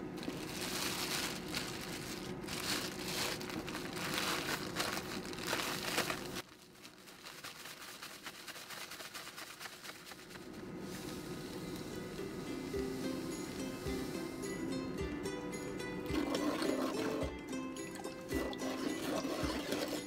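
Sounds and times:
plastic bag crinkling: 0.0 - 10.6.

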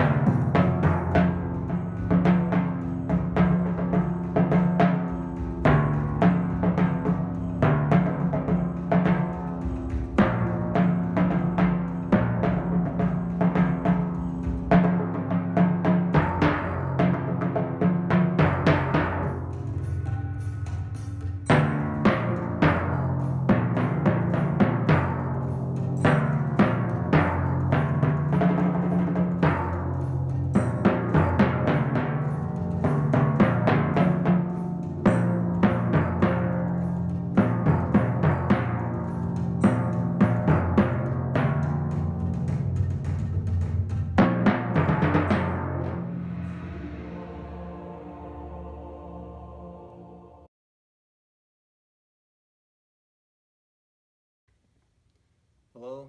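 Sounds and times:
timpani strokes: 0.0 - 50.3.

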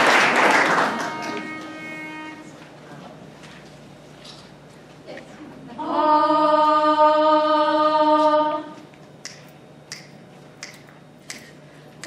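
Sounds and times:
pitch pipe note: 0.6 - 2.7
finger snaps: 8.9 - 12.0.

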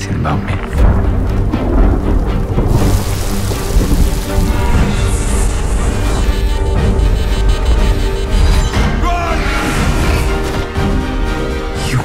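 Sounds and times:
brooding trailer music: 0.0 - 12.0
deep rumble: 0.1 - 10.4
heavy rain: 0.5 - 11.5.

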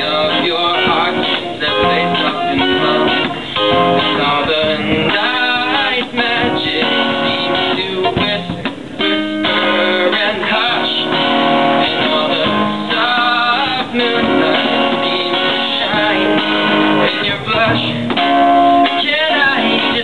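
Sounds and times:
acoustic guitar strummed and picked: 0.0 - 20.0.

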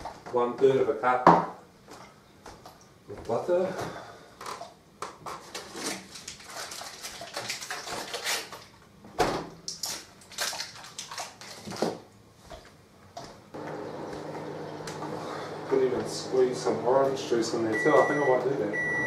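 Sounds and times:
microwave oven humming: 13.5 - 19.0.

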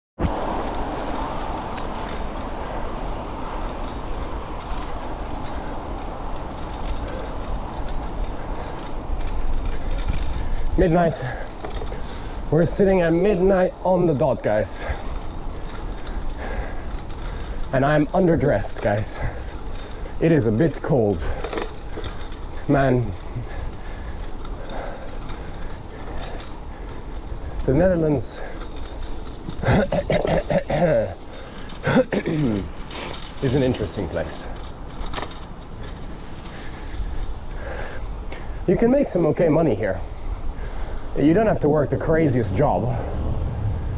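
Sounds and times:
bicycle tyres rolling on pavement: 0.2 - 43.9
bike clicks and rattles: 0.2 - 43.9
low rumble: 42.4 - 43.9
wind on microphone: 42.6 - 43.9.

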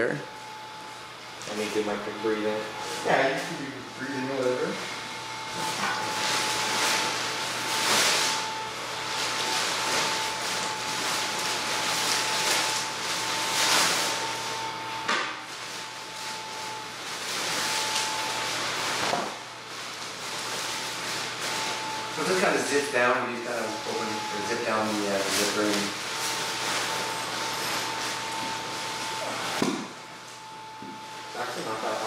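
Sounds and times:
small blower fan whining: 0.0 - 32.0.

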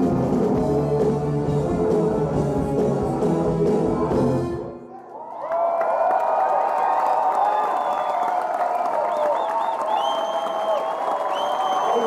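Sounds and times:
crowd cheering and applauding: 4.8 - 12.0
high whistles: 9.1 - 12.0.

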